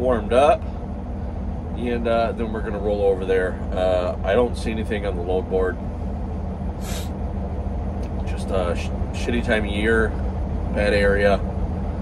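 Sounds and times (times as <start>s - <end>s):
diesel engine idling: 0.0s - 12.0s
air hiss: 6.8s - 7.1s.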